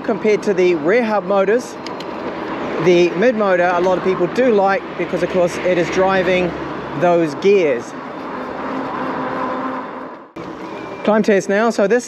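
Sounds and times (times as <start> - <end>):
wind and tyre noise: 0.0 - 12.0.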